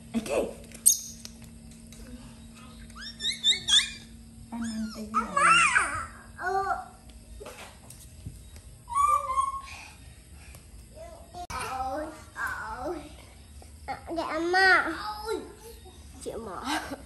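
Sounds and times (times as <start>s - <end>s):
children squealing: 3.0s - 6.2s, 8.9s - 9.8s
children babbling and shouting: 8.9s - 9.8s.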